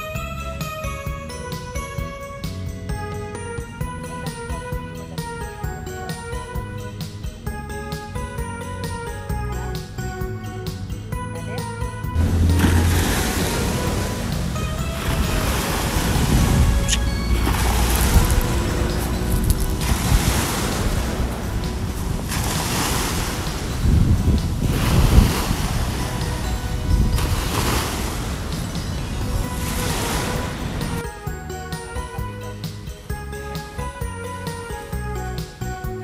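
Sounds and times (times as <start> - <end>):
soft background music: 0.0 - 36.0
wind rumbling on microphone: 12.1 - 31.0
waves washing onto shore: 12.2 - 31.0.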